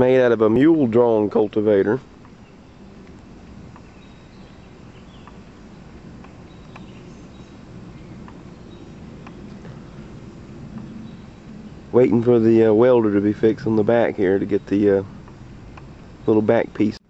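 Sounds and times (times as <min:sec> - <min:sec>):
steady low rumble: 0:00.0 - 0:17.0
bird chirps: 0:02.0 - 0:16.9.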